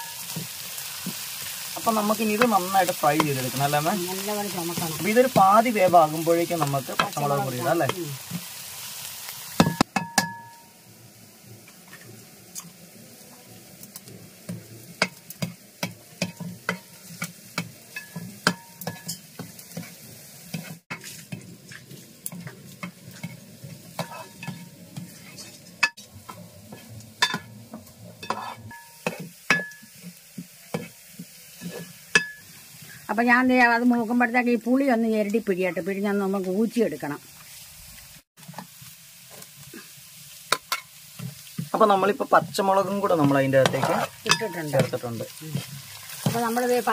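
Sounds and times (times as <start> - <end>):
low sizzle: 0.0 - 46.9
spoon scraping metal pan: 15.8 - 32.6, 43.2 - 46.8.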